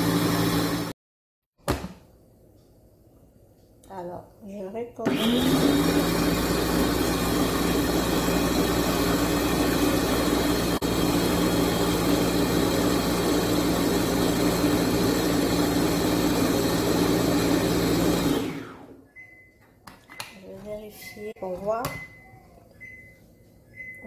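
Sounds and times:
blender motor running: 0:00.0 - 0:00.9, 0:05.0 - 0:19.0.

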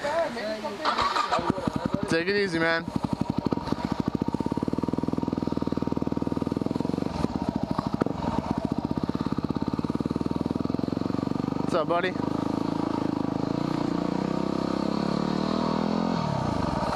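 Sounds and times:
motorcycle engine running at low revs: 0:00.8 - 0:16.9.

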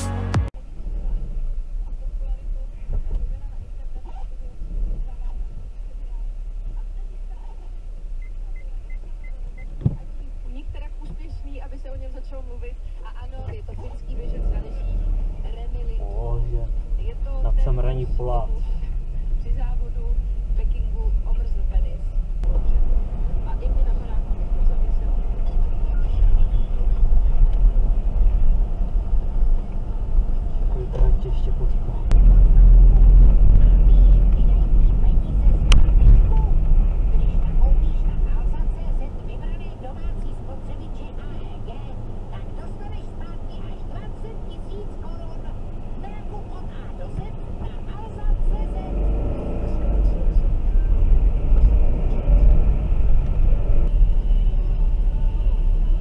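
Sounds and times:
car engine and tyres rumbling: 0:00.0 - 0:56.0
car radio talking quietly: 0:00.6 - 0:56.0.

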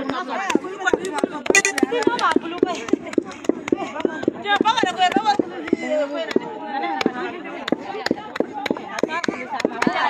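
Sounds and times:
people's voices: 0:00.0 - 0:10.0
wooden pestles pounding in mortar: 0:00.0 - 0:10.0.

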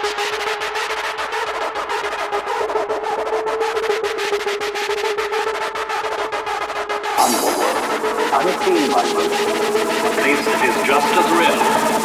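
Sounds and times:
held synth tone: 0:07.2 - 0:12.0
rapid percussion hits: 0:07.2 - 0:12.0.

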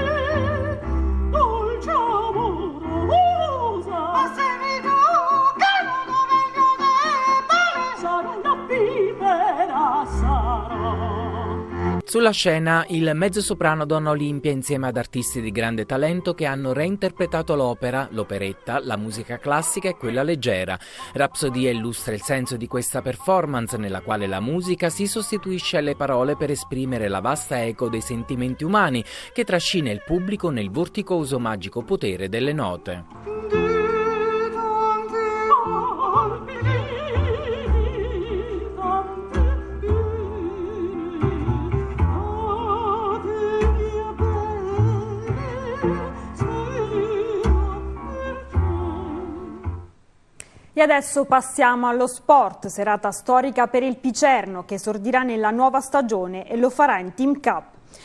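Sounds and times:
person singing opera with vibrato: 0:00.0 - 0:12.1, 0:27.7 - 0:30.9, 0:33.0 - 0:49.8
piano accompaniment: 0:00.0 - 0:50.0
double bass: 0:09.6 - 0:12.1, 0:35.8 - 0:50.0.

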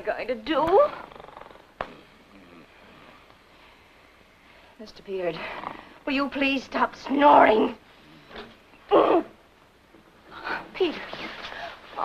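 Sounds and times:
man snoring: 0:01.0 - 0:03.2.

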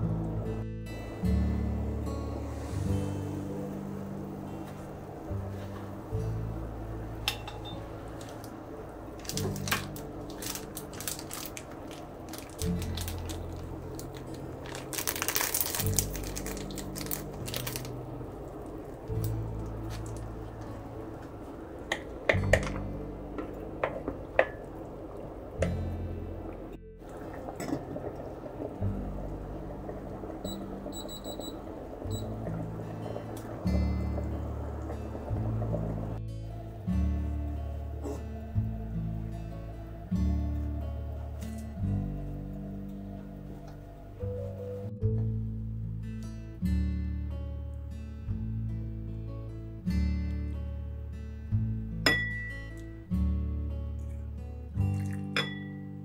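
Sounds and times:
soup simmering in saucepan: 0:00.0 - 0:44.3
acoustic guitar music: 0:00.0 - 0:56.0
kitchenware clinking on ceramic bowl: 0:52.1 - 0:52.6, 0:55.4 - 0:55.8.

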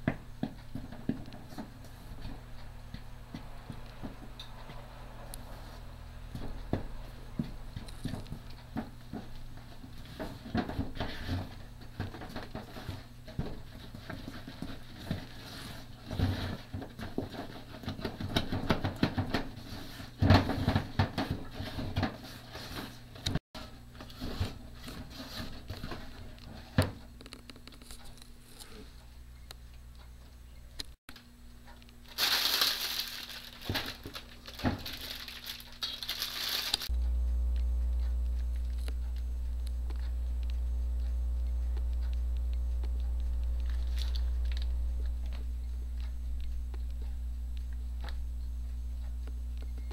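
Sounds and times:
low electrical hum: 0:00.0 - 0:49.9
plastic bag crinkling: 0:32.1 - 0:36.9, 0:43.6 - 0:44.7.

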